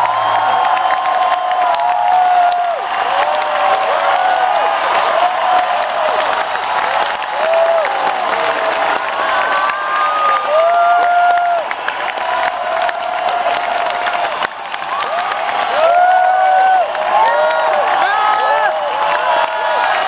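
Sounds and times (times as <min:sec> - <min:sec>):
crowd cheering and applauding: 0:00.0 - 0:20.0
people whooping: 0:00.0 - 0:20.0.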